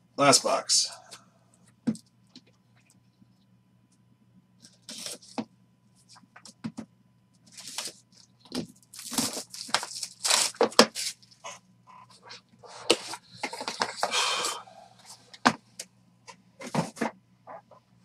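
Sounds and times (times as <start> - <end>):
plastic wrap crinkling and tearing: 7.5 - 8.0, 8.8 - 11.4.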